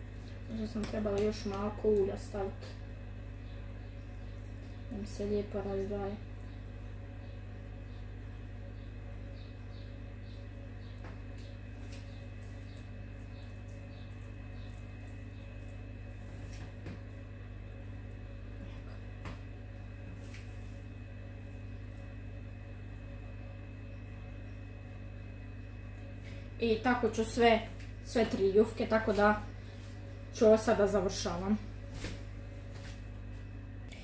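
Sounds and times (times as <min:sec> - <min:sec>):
steady low hum: 0:00.0 - 0:34.0
light taps of meat on dough: 0:00.7 - 0:02.1.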